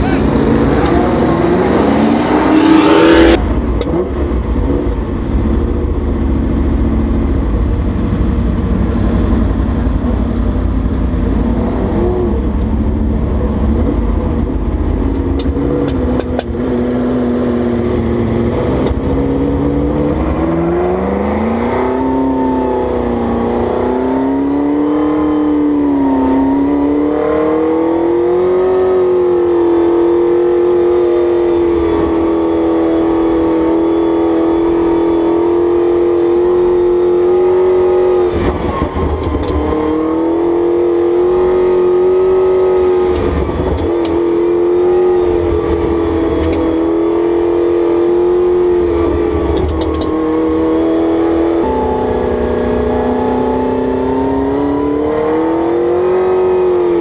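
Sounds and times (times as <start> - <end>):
race car engine: 0.0 - 57.0.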